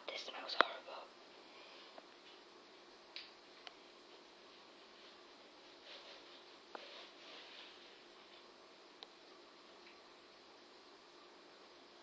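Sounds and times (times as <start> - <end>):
person whispering: 0.0 - 1.1.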